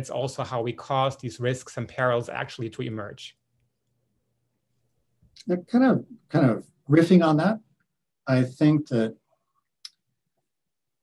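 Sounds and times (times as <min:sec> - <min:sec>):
man speaking: 0:00.0 - 0:03.4, 0:05.4 - 0:09.2.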